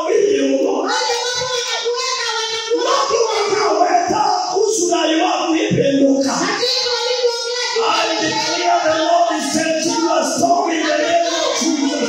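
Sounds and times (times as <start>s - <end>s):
woman singing through loudspeakers: 0.7s - 3.7s, 6.3s - 12.0s.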